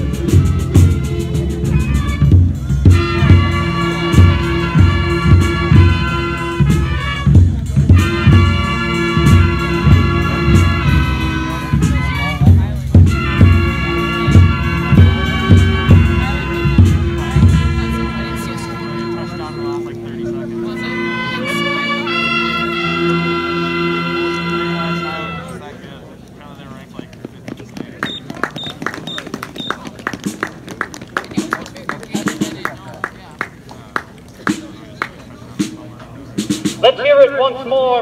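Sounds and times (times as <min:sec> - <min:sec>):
marching band brass chord: 0:00.0 - 0:25.8.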